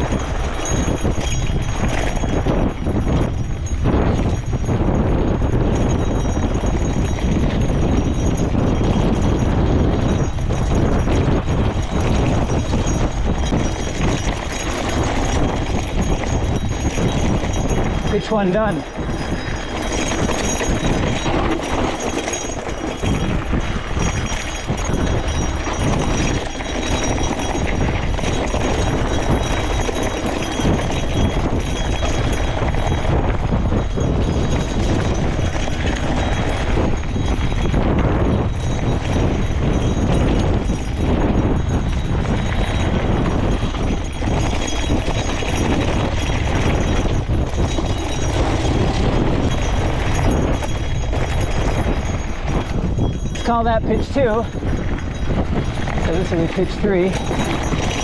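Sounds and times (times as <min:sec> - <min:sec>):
bike rattling: 0:00.0 - 0:58.0
wind rumble on microphone: 0:00.0 - 0:58.0.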